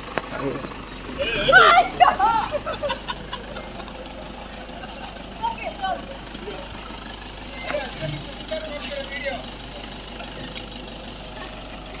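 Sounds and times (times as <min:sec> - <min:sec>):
engine idling: 0:00.0 - 0:12.0
voices talking: 0:00.2 - 0:12.0.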